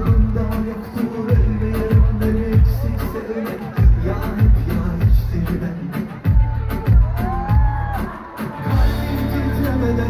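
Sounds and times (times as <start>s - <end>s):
live pop concert music: 0.0s - 10.0s.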